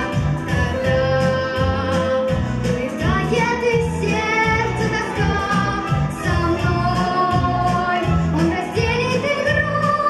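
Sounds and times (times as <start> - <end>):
instrumental accompaniment with bass: 0.0 - 10.0
girl singing into a microphone: 3.0 - 10.0.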